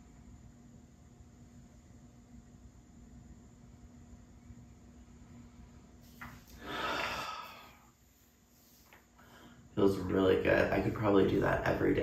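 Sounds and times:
low steady hum: 0:00.0 - 0:12.0
person exhaling: 0:06.5 - 0:08.0.

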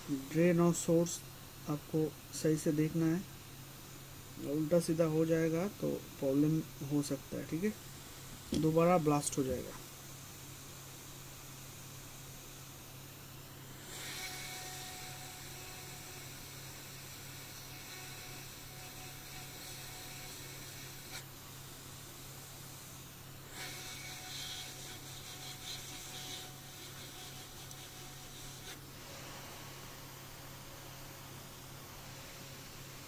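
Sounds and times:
hot air blowing hiss: 0:13.6 - 0:33.0.

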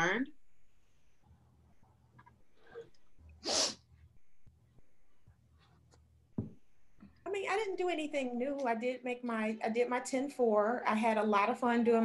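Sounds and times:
person's sharp burst of breath: 0:03.4 - 0:03.8.

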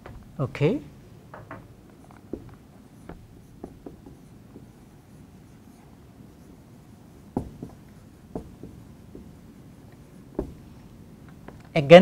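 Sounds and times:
marker pen writing on whiteboard: 0:01.8 - 0:11.5.

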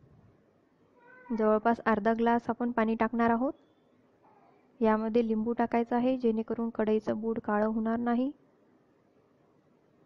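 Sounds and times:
woman speaking: 0:01.3 - 0:03.6, 0:04.8 - 0:08.4.

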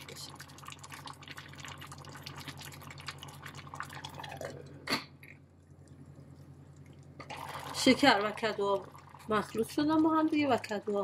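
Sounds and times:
low steady hum: 0:00.0 - 0:11.0
syrup bubbling in a saucepan: 0:00.0 - 0:11.0.

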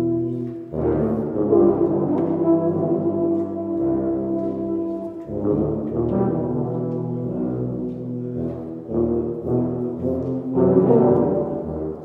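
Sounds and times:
tuba and euphonium ensemble: 0:00.0 - 0:12.0.

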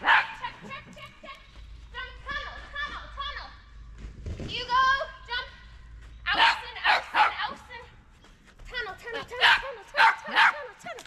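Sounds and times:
small dog barking: 0:00.0 - 0:00.4, 0:06.4 - 0:07.5, 0:09.4 - 0:10.7.

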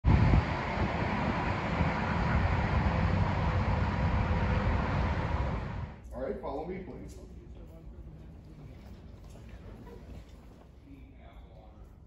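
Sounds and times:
steady rumble: 0:00.0 - 0:06.0
wind buffeting microphone: 0:00.0 - 0:06.0
faint hum: 0:00.1 - 0:12.0.

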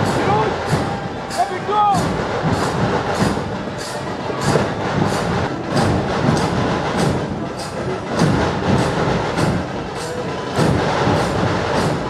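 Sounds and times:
loud drumming troupe: 0:00.0 - 0:12.0.

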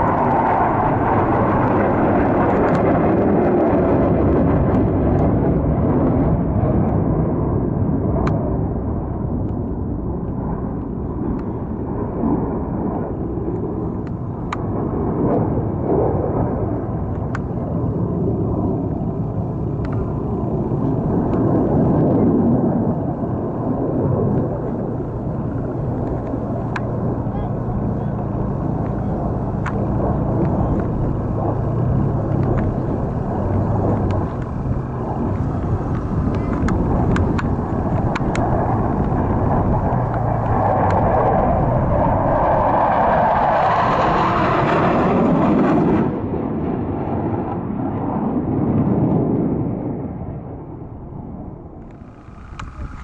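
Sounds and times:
jet engine rumble: 0:00.0 - 0:53.0.

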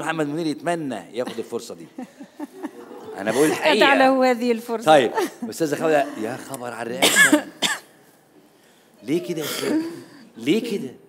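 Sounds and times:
person coughing: 0:07.0 - 0:07.9, 0:09.4 - 0:10.0.

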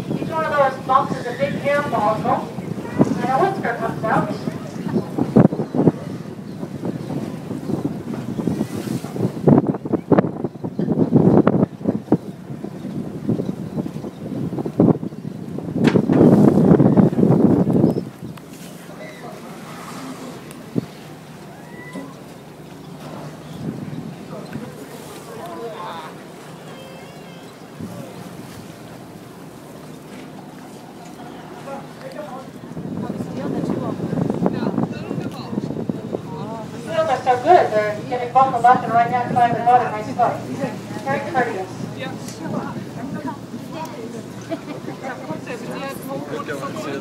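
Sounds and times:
water washing: 0:00.0 - 0:47.0
wind buffeting microphone: 0:00.0 - 0:47.0.

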